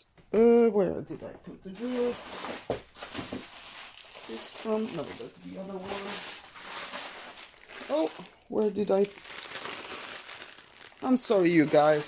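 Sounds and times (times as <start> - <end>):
plastic packaging crinkling: 1.8 - 12.0.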